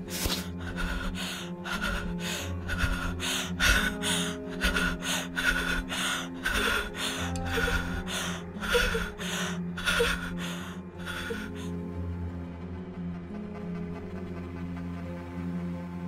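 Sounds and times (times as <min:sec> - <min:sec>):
low music drone: 0:00.0 - 0:16.0.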